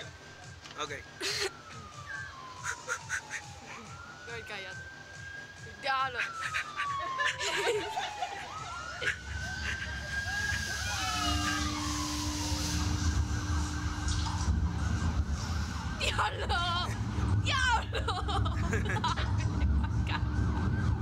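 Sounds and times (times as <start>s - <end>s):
siren-like wailing warning tone: 0.0s - 21.0s
low rumble: 9.9s - 16.0s.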